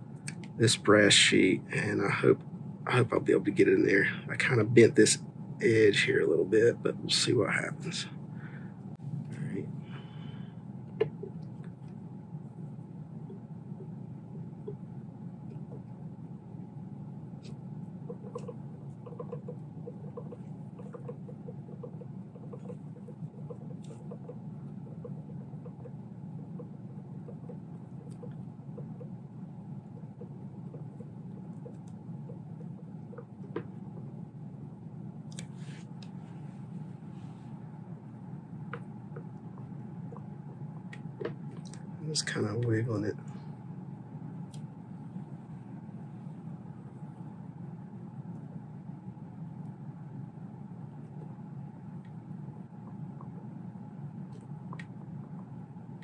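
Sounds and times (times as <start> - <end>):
low room hum: 0.0 - 56.0.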